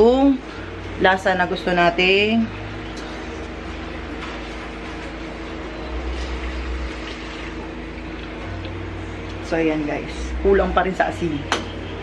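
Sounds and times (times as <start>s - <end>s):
machine hum: 0.0s - 12.0s.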